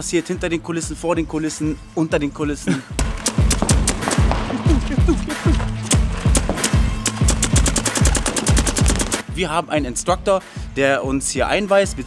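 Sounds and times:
paintball marker firing: 0:03.0 - 0:09.3
electronic music with heavy drum beat: 0:03.0 - 0:09.6.

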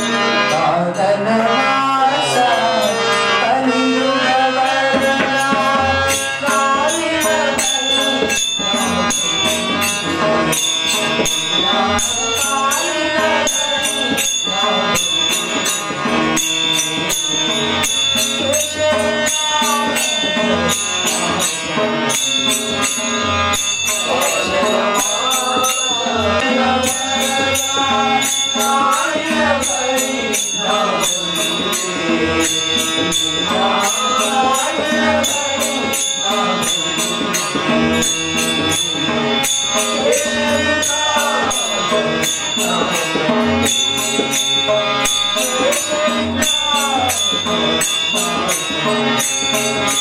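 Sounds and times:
man singing into microphone: 0:00.0 - 0:49.6
harmonium with drone: 0:00.0 - 0:50.0
instrumental accompaniment: 0:00.0 - 0:50.0
sharp percussion beat: 0:01.4 - 0:50.0.

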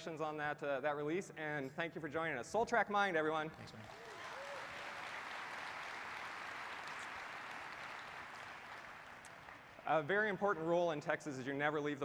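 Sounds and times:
audience applauding: 0:03.7 - 0:09.9.

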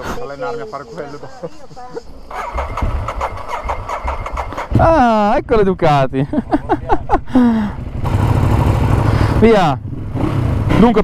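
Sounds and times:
motorcycle engine starting and idling: 0:02.3 - 0:05.3, 0:07.4 - 0:11.0.

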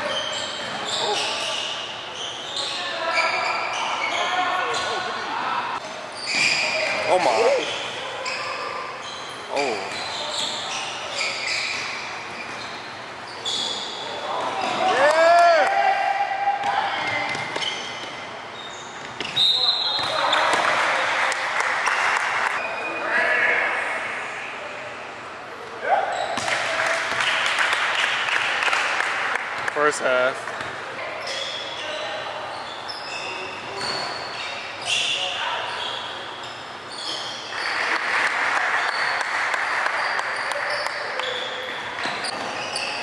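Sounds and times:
people shouting in gym: 0:14.0 - 0:17.3.

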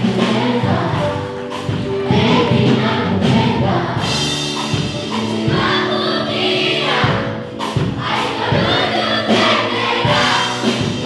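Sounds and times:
group singing along: 0:00.0 - 0:11.0.

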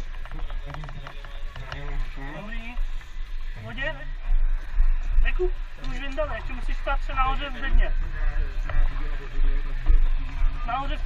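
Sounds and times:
men talking: 0:00.0 - 0:11.0
steady low rumble: 0:00.0 - 0:11.0.

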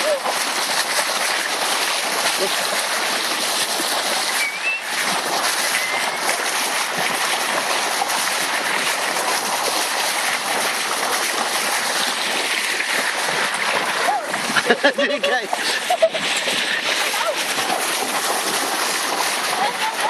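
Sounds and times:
sea water rushing and splashing: 0:00.0 - 0:20.0.

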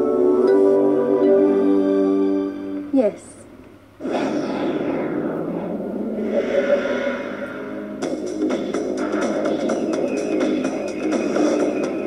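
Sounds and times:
noisy whoosh falling in pitch: 0:04.0 - 0:08.1
held tone: 0:06.1 - 0:08.0.

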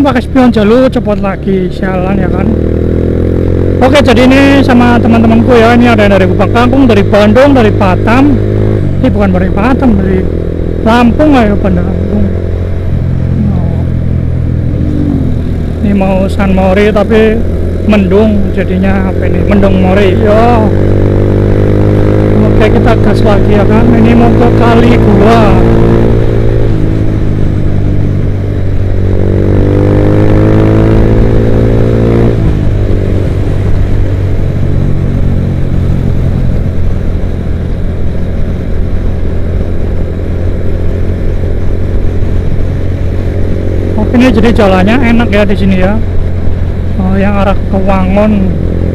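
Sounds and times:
motorcycle engine cruising: 0:00.0 - 0:48.9
wind and road noise: 0:00.0 - 0:48.9.

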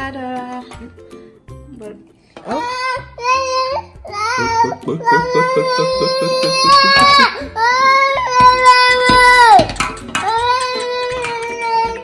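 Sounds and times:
young child wailing: 0:02.5 - 0:09.6.

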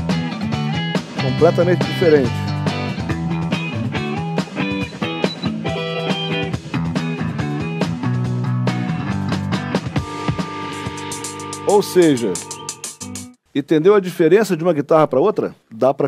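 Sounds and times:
electric guitar picked notes: 0:00.7 - 0:13.3.

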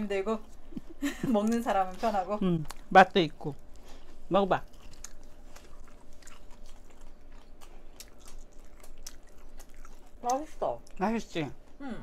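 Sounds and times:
person chewing with mouth clicks: 0:02.5 - 0:11.0.

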